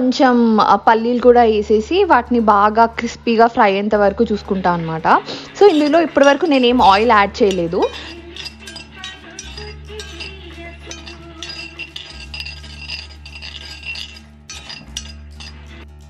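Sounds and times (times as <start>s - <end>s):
background music: 0.0s - 16.0s
metal spoon clinking in pot: 5.6s - 15.8s.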